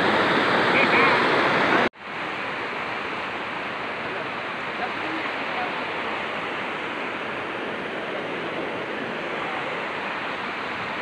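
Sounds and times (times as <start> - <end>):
river rushing over rocks: 0.0 - 11.0.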